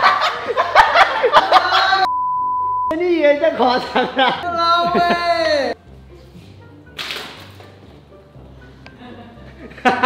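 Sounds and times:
quiet background music: 0:03.0 - 0:10.0.

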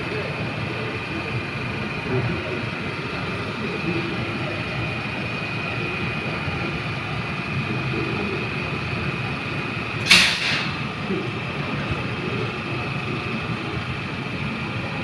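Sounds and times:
train rumble: 0:00.0 - 0:15.0.

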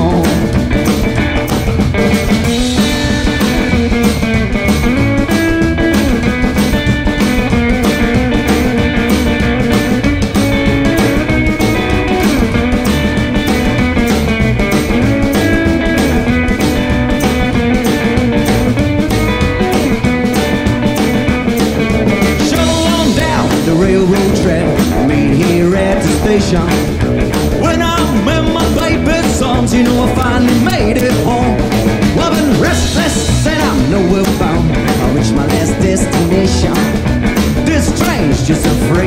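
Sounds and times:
drum-kit beat: 0:00.0 - 0:39.0
electric guitar: 0:00.0 - 0:39.0
upright bass: 0:00.0 - 0:39.0.

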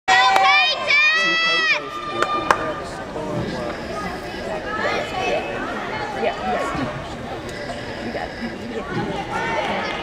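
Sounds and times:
arena chatter: 0:00.1 - 0:10.0.

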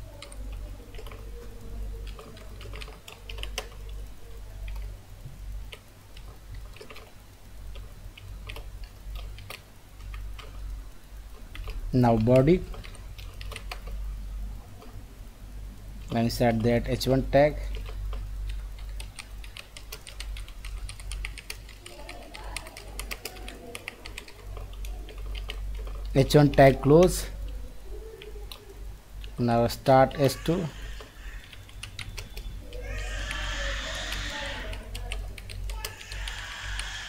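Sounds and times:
computer keyboard typing: 0:00.0 - 0:05.0, 0:05.6 - 0:15.0, 0:16.0 - 0:37.0
low steady hum: 0:00.0 - 0:37.0.

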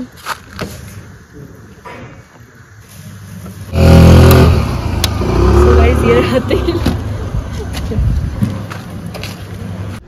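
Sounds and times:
vehicle engine running: 0:03.6 - 0:10.0.

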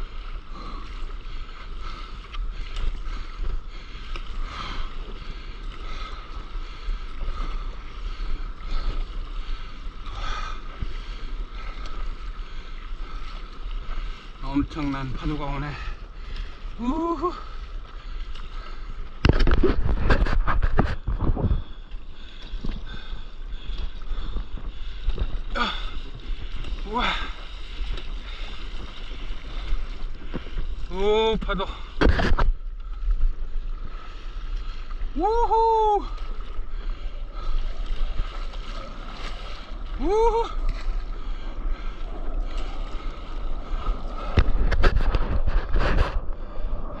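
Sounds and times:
paddle strokes in water: 0:00.0 - 0:47.0
water noise: 0:00.0 - 0:47.0
wind buffeting microphone: 0:17.4 - 0:47.0
paddle splashes against board: 0:25.9 - 0:33.0.

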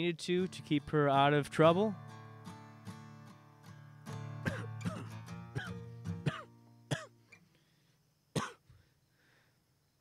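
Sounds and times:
acoustic guitar strums: 0:00.1 - 0:07.6
person coughing: 0:04.4 - 0:07.1, 0:08.4 - 0:08.7.

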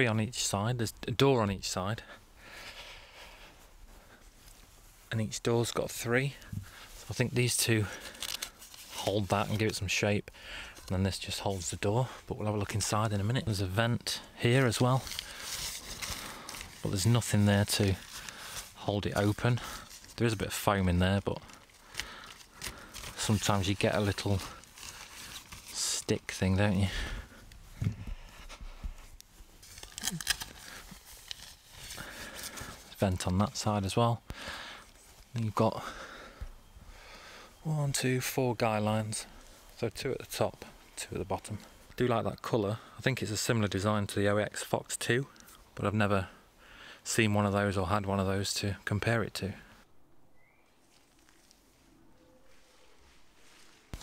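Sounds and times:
faint outdoor ambience: 0:00.0 - 0:54.0
nylon tent fabric rustling: 0:02.8 - 0:10.1, 0:11.0 - 0:34.0, 0:50.8 - 0:54.0
rising bird chirp: 0:50.1 - 0:51.0, 0:51.8 - 0:53.3.

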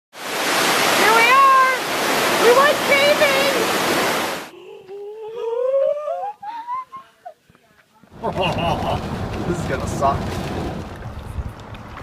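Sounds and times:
fast-flowing water rushing: 0:00.2 - 0:04.5.

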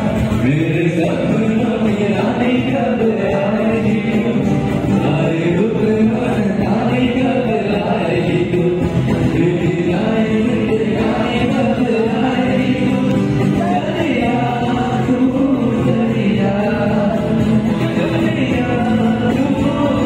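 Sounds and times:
guitars: 0:00.0 - 0:20.0
keyboard: 0:00.0 - 0:20.0
men singing: 0:00.0 - 0:20.0.

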